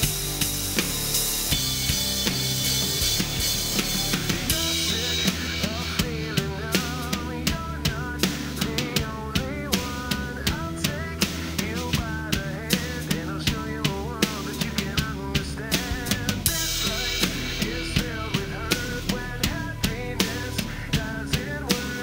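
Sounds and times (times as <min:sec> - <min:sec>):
recorded guitar and bass song: 0:00.0 - 0:22.0
rock drum kit beat: 0:00.0 - 0:22.0.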